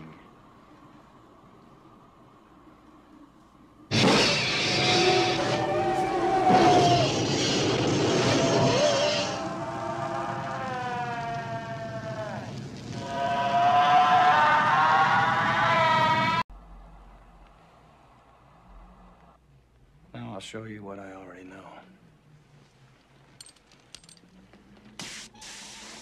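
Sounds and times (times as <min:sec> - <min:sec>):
flames burning: 0:03.7 - 0:16.4
flamethrower firing: 0:03.9 - 0:15.4
monster shrieking squeals: 0:04.1 - 0:16.4.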